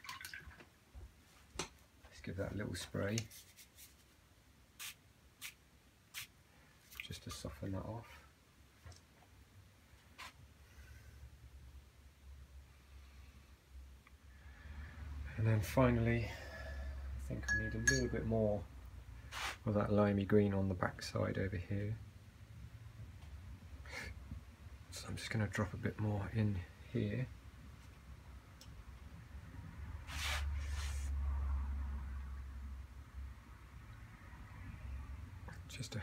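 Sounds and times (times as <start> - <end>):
spray bottle squirts: 4.8 - 6.3
low steady hum: 5.9 - 30.0.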